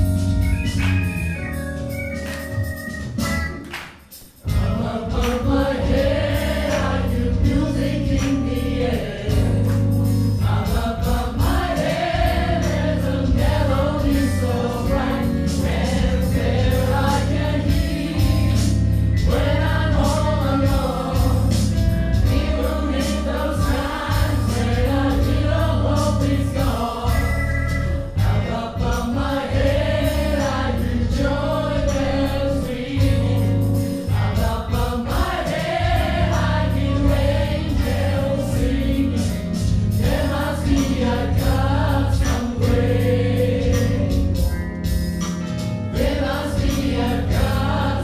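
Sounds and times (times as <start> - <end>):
live band with strong bass: 0.0 - 48.0
gospel choir singing: 4.4 - 44.5, 45.9 - 48.0.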